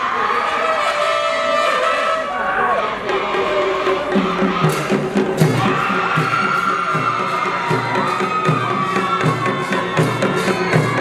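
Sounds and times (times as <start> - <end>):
high wind instrument melody: 0.0 - 11.0
steady drum beat: 3.0 - 11.0.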